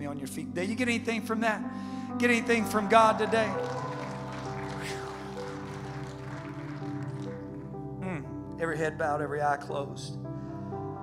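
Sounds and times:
soft keyboard chords: 0.0 - 11.0.

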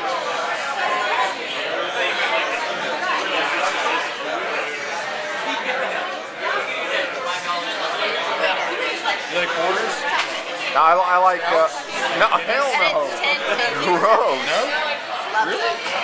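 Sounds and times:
many voices talking: 0.0 - 16.0.

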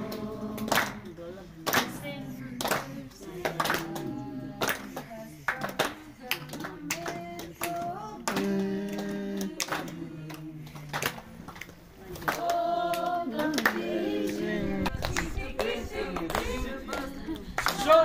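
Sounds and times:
people singing together: 0.0 - 18.0
hand claps: 0.1 - 1.1, 1.7 - 2.0, 2.6 - 13.9, 14.9 - 18.0
crowd talking: 14.2 - 18.0.

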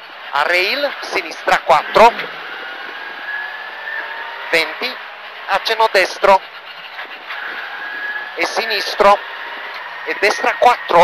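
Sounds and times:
rally car engine: 0.0 - 11.0
road noise: 0.0 - 11.0.

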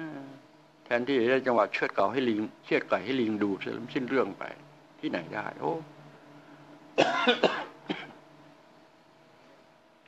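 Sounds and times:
man coughing: 7.0 - 8.2.

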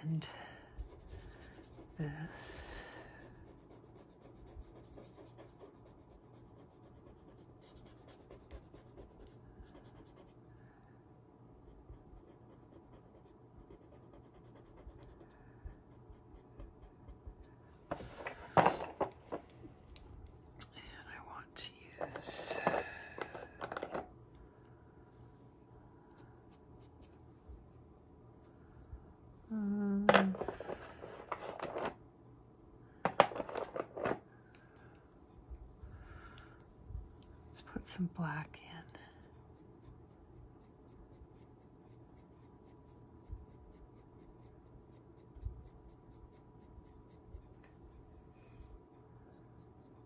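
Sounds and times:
pastel pencil rubbing on sanded paper: 0.8 - 10.4, 11.6 - 17.4, 39.2 - 47.8.

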